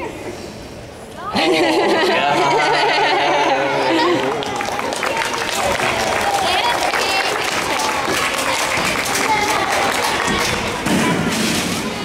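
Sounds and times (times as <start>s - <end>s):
children chattering: 2.1s - 12.0s.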